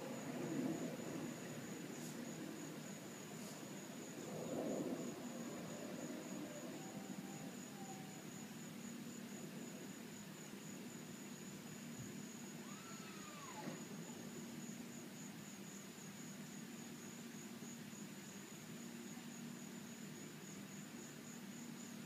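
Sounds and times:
insects chirring: 0:00.0 - 0:22.0.

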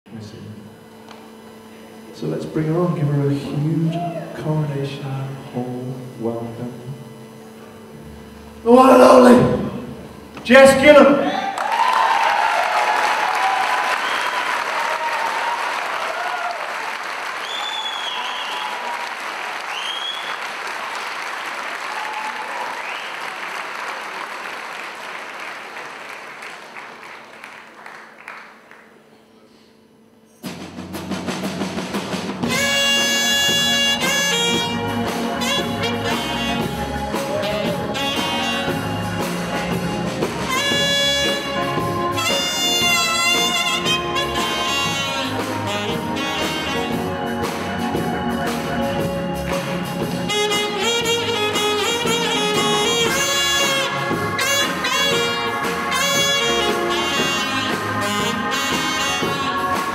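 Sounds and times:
sound system electrical hum: 0:00.1 - 0:59.9
audience applauding and cheering: 0:11.3 - 0:29.0.

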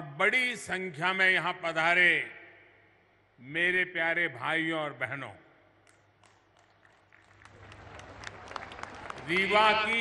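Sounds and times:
audience applause: 0:06.2 - 0:10.0.

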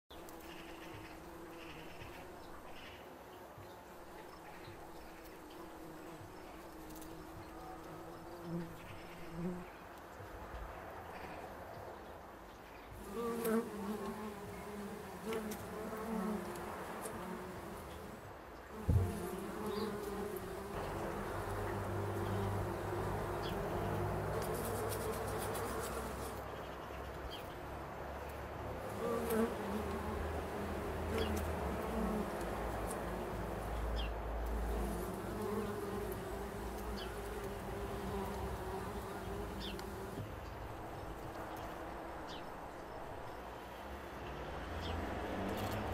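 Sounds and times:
bumblebees buzzing in flight: 0:13.0 - 0:26.4, 0:28.8 - 0:40.3
sharp thump: 0:18.8 - 0:19.2.

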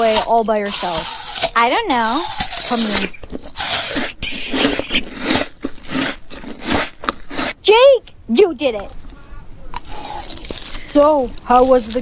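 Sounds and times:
apple chewing crunches: 0:00.0 - 0:07.6, 0:08.9 - 0:12.0.

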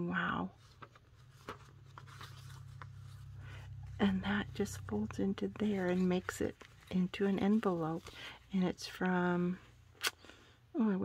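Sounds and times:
steady low hum: 0:00.0 - 0:11.0
paper rustling and crinkling: 0:00.5 - 0:09.0.

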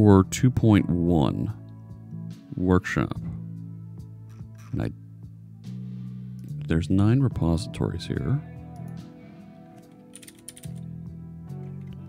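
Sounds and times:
soft background music: 0:00.0 - 0:12.0
computer keyboard typing: 0:09.8 - 0:10.8.

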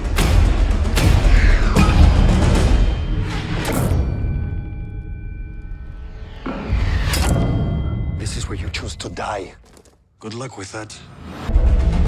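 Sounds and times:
dramatic film score: 0:00.0 - 0:12.0.

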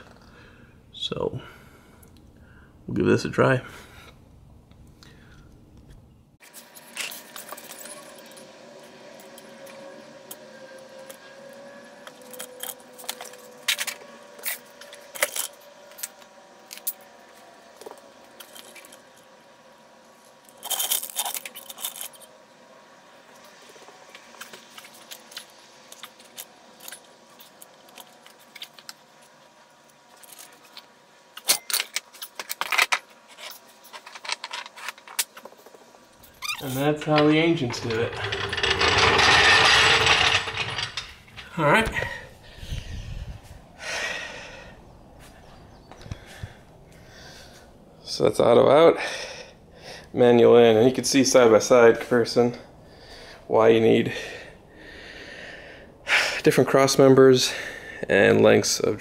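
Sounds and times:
metallic clinks and knocks: 0:36.2 - 0:41.6.

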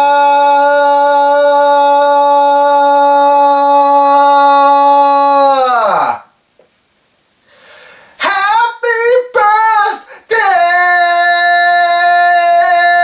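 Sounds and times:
man singing a cappella: 0:00.0 - 0:06.3, 0:08.2 - 0:13.0.

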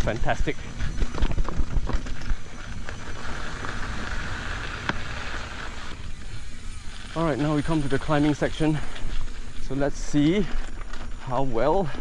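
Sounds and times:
bike rattles and knocks: 0:00.0 - 0:05.5
bike tyres rolling on dirt: 0:00.0 - 0:12.0.

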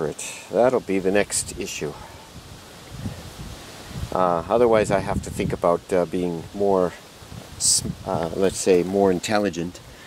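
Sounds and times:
wind buffeting microphone: 0:01.2 - 0:10.0.

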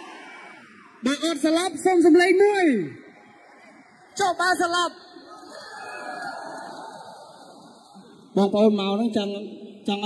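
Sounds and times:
crowd of voices: 0:00.0 - 0:10.0.

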